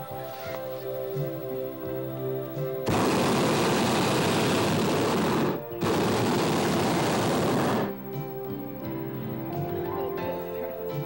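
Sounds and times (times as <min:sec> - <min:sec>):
propane burner blast: 0:02.9 - 0:08.0.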